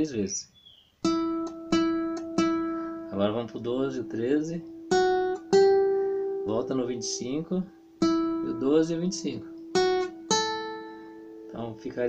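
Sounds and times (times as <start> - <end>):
classical guitar note plucked: 1.0 - 12.0.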